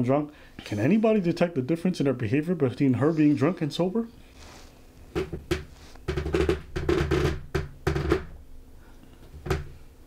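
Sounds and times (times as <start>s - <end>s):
drum hits: 5.1s - 8.3s.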